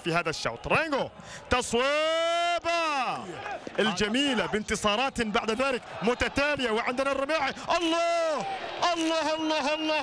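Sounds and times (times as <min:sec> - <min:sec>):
football commentator shouting: 0:00.0 - 0:10.0.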